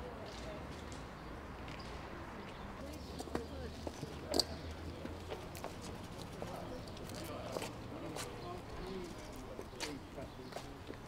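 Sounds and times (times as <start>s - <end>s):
shoe clicks on paved path: 9.0s - 11.0s.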